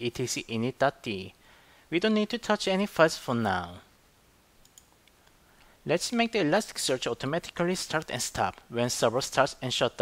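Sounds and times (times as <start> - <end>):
faint light clicks: 4.6 - 5.7
man's voice: 5.9 - 10.0.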